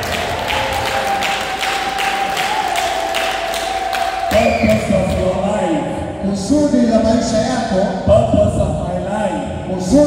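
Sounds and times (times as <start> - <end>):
hands clapping: 0.0 - 5.3.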